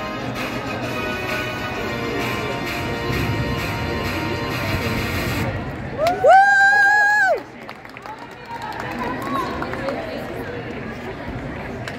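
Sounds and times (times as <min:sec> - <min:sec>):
chatter of many voices: 0:00.0 - 0:06.0, 0:07.1 - 0:11.9.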